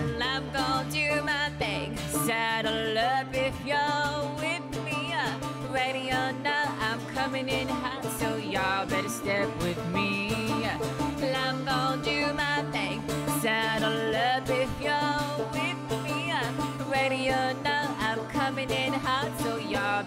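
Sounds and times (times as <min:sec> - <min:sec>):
acoustic guitar: 0:00.0 - 0:20.0
banjo: 0:00.0 - 0:20.0
woman singing: 0:00.0 - 0:20.0.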